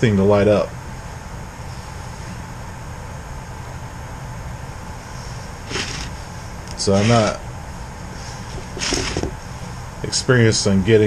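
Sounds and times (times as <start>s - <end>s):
even hiss: 5.1s - 7.4s.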